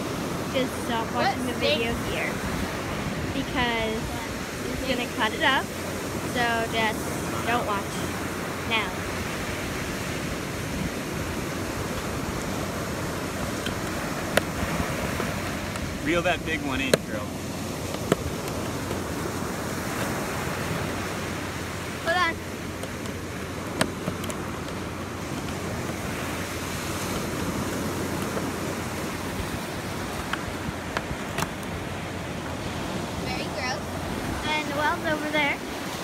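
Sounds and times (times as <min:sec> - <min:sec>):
ocean surf washing onto beach: 0:00.0 - 0:36.0.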